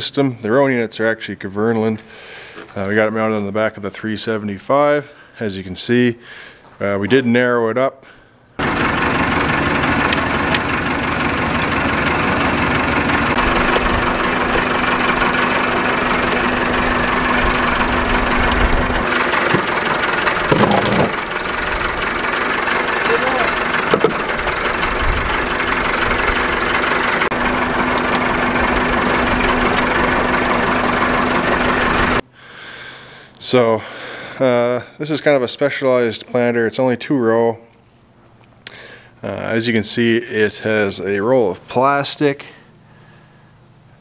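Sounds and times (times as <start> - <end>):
low hum: 8.6 - 32.2
tractor diesel engine running: 8.6 - 32.2.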